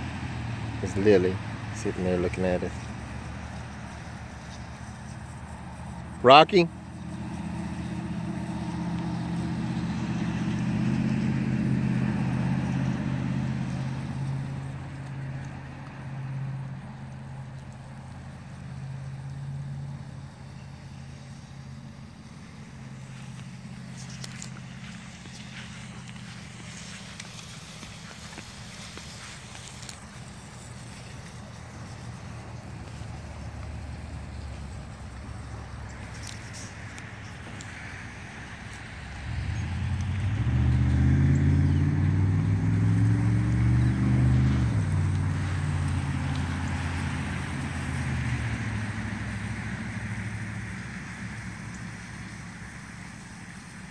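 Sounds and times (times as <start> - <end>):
vehicle engine running: 0.0 - 53.9.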